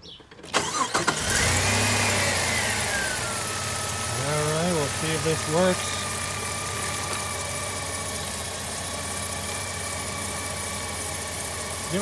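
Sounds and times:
car engine idling: 0:00.5 - 0:12.0.

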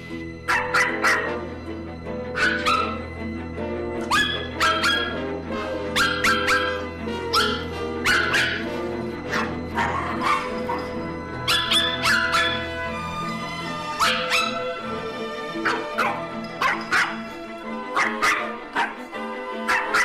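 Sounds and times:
background music: 0:00.0 - 0:20.0
dog barking: 0:00.4 - 0:01.5, 0:02.3 - 0:03.1, 0:04.0 - 0:05.3, 0:05.9 - 0:12.9, 0:13.9 - 0:14.8, 0:15.6 - 0:20.0.

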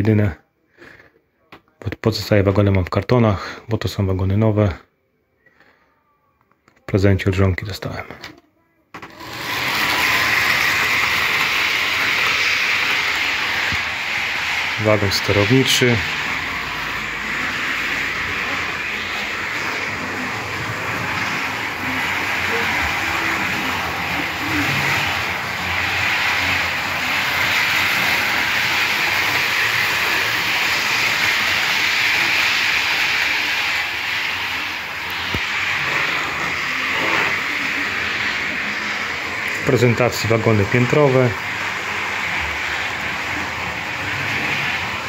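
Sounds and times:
model train motor whirring: 0:09.0 - 0:45.0.

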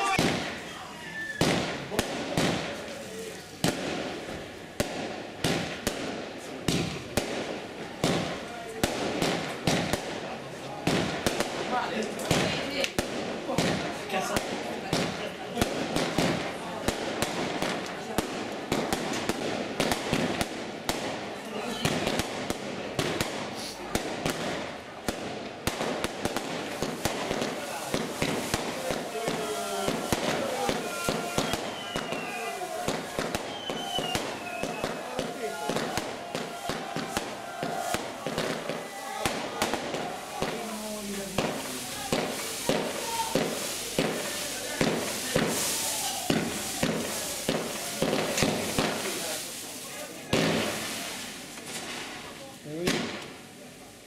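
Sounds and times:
fireworks bangs and crackles: 0:00.0 - 0:53.8.

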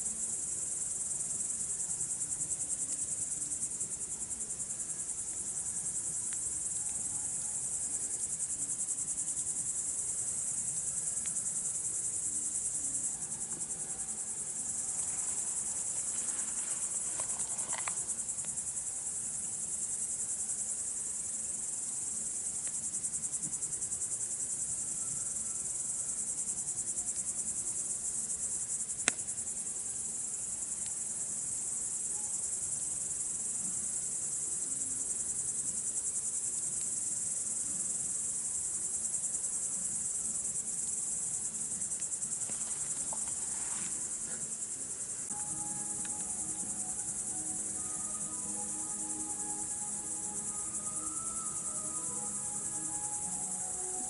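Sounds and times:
crickets chirping: 0:00.0 - 0:54.0.

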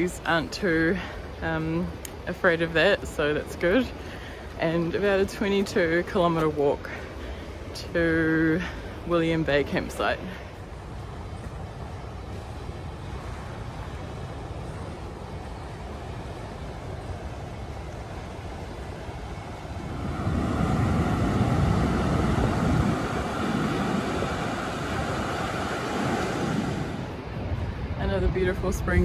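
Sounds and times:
wind on microphone: 0:07.5 - 0:29.0.

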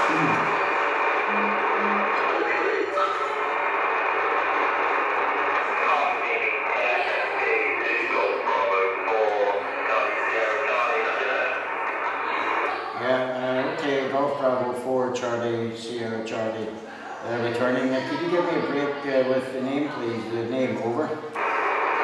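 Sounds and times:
radio static hiss: 0:00.0 - 0:14.1, 0:19.9 - 0:22.0
faint radio voice: 0:01.3 - 0:03.5, 0:05.6 - 0:14.4, 0:17.0 - 0:20.8
man speaking close to microphone: 0:05.8 - 0:11.6, 0:13.0 - 0:21.3.

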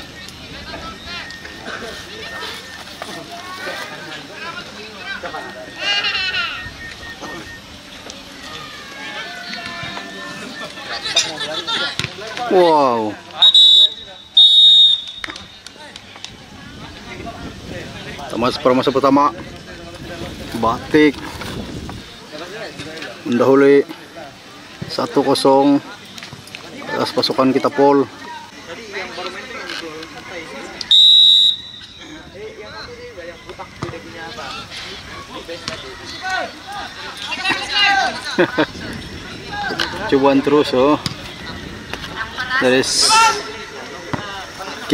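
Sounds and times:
voices talking: 0:00.0 - 0:44.9
referee's whistle blasts: 0:13.4 - 0:15.6, 0:30.9 - 0:32.0.

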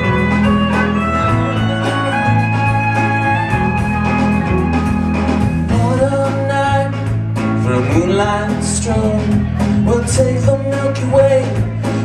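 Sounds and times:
fiddle: 0:00.0 - 0:05.6
live band playing: 0:00.0 - 0:12.0.

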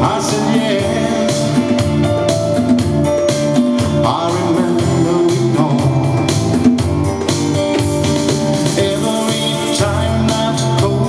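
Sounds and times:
keyboard: 0:00.0 - 0:11.0
small live band playing: 0:00.0 - 0:11.0
hand drum beat: 0:06.5 - 0:10.2.

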